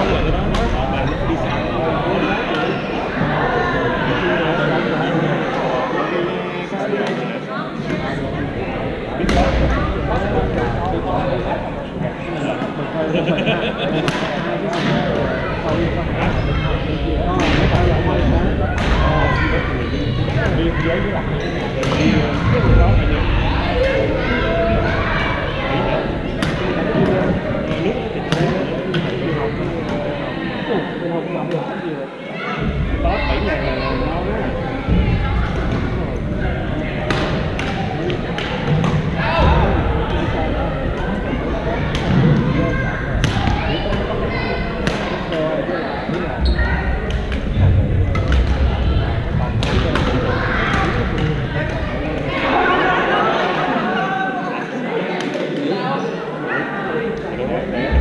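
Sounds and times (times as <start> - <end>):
din of many voices: 0.0 - 58.0
players chattering: 0.0 - 58.0.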